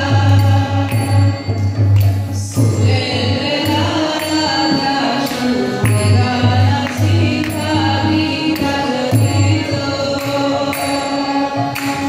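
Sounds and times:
hand drum: 0:00.0 - 0:12.0
harmonium: 0:00.0 - 0:12.0
woman singing devotional hymn: 0:02.5 - 0:12.0.

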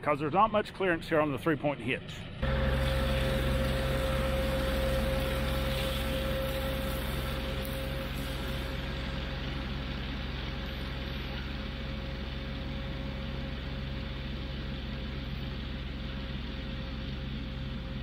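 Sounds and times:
tractor engine drone: 0:00.0 - 0:18.0
rotary cutter high whine: 0:02.3 - 0:18.0.

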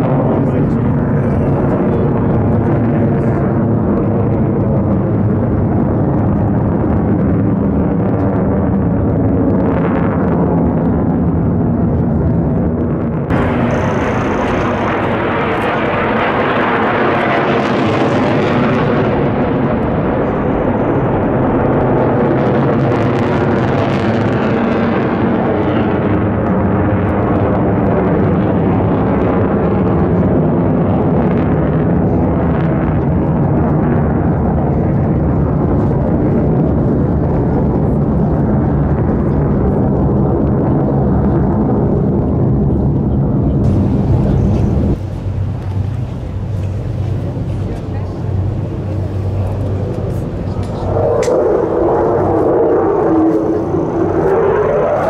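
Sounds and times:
jet engine roaring overhead: 0:00.0 - 0:55.0.

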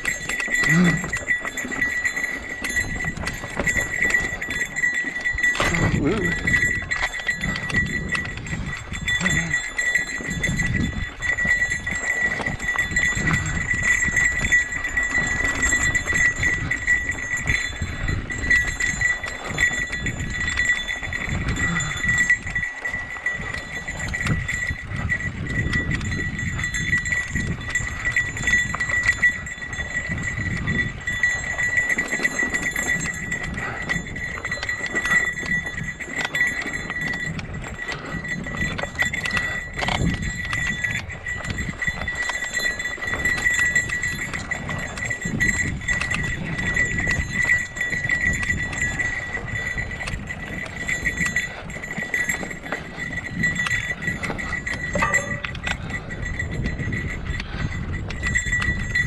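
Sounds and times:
bike knocking and rattling: 0:00.0 - 0:59.0
bike tyres rumbling on rocky trail: 0:00.0 - 0:59.0
steady high ringing: 0:00.0 - 0:59.0.

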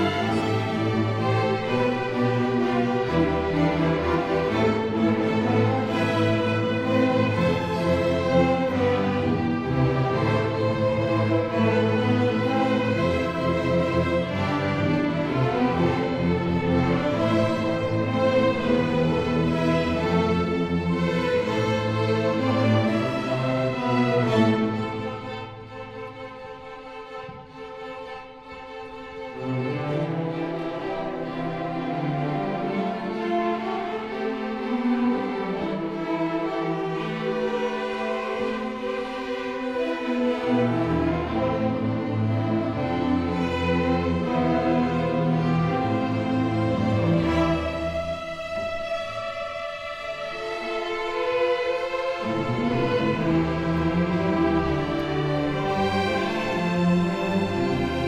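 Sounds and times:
string orchestra playing: 0:00.0 - 0:58.0.

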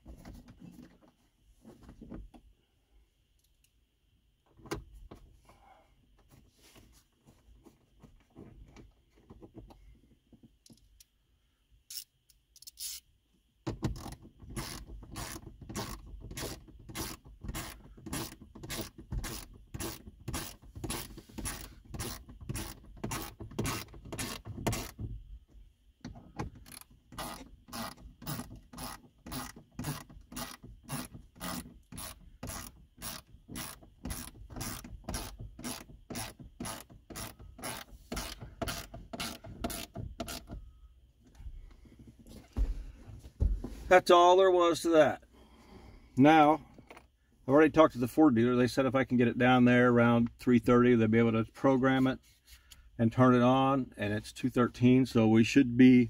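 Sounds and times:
ratchet wrench clicking: 0:11.9 - 0:13.1, 0:13.9 - 0:25.0, 0:26.6 - 0:40.5.

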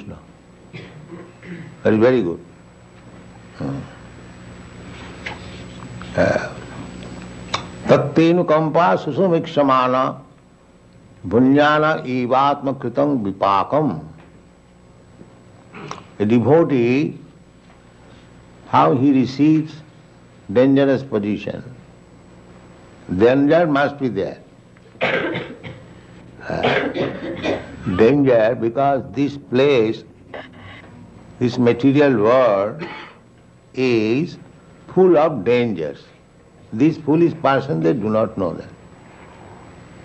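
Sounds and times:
recording hum and hiss: 0:00.0 - 0:40.0
man coughing and clearing throat: 0:00.7 - 0:01.8, 0:15.7 - 0:16.1, 0:25.0 - 0:27.9, 0:32.8 - 0:33.2
man's guttural throat sound: 0:06.1 - 0:06.9, 0:26.4 - 0:28.0.

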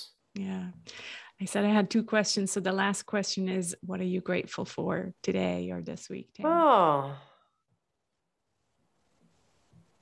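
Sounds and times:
woman saying oh: 0:06.4 - 0:07.2.

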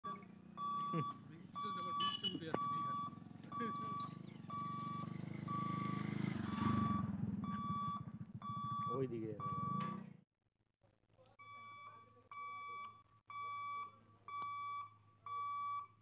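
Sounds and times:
level crossing warning beeps: 0:00.1 - 0:10.1, 0:11.4 - 0:16.0
motorcycle engine: 0:00.1 - 0:10.2.

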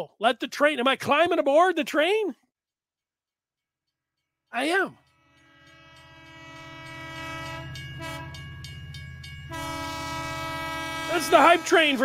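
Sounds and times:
train horn chord: 0:05.1 - 0:12.0
train rumbling and clattering: 0:06.2 - 0:12.0.

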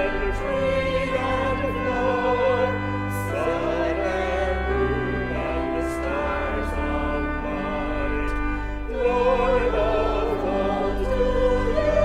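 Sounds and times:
hymn sung with vibrato: 0:00.0 - 0:12.0
sustained instrumental chords: 0:00.0 - 0:12.0.

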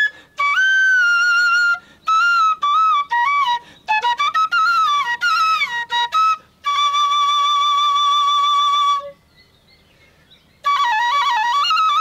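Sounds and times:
flute playing: 0:00.0 - 0:09.2, 0:10.6 - 0:12.0.

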